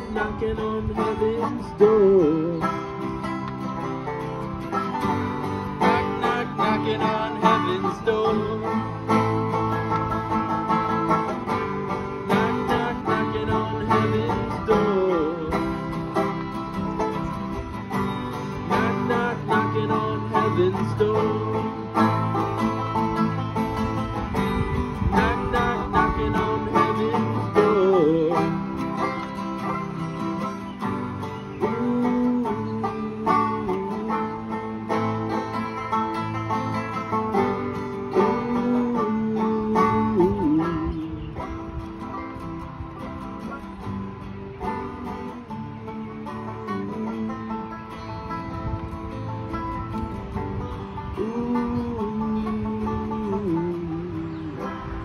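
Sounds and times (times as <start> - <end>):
banjo picking: 0.0 - 55.0
strummed acoustic guitars: 0.0 - 55.0.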